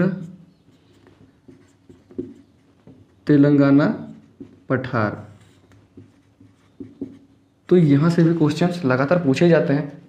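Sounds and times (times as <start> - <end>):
marker writing on a whiteboard: 0.0 - 9.3.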